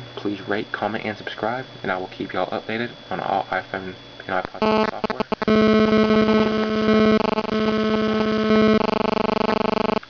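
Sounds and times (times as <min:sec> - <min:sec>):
mobile phone interference buzz: 0:04.3 - 0:10.0.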